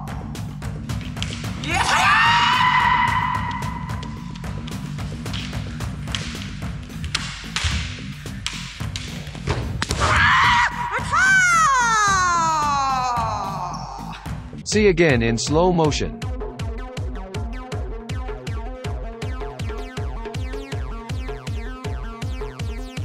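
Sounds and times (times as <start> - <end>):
background music: 0.0 - 23.0
footwork on floor: 0.9 - 10.1
person shouting: 1.6 - 3.9, 10.0 - 14.2
bamboo sword strikes: 5.2 - 10.2.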